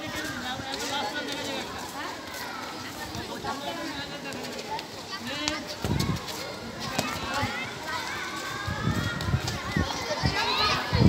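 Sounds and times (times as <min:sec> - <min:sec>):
running footsteps on pavement: 0:00.0 - 0:11.0
children calling out: 0:05.7 - 0:11.0.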